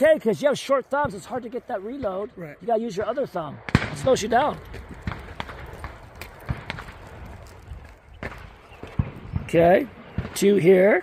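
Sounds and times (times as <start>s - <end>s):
footsteps on gravel: 4.1s - 9.5s.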